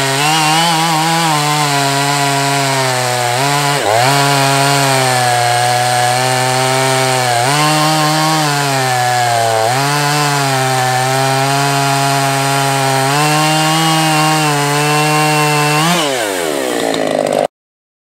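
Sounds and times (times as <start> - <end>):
chainsaw cutting log: 0.0 - 17.5.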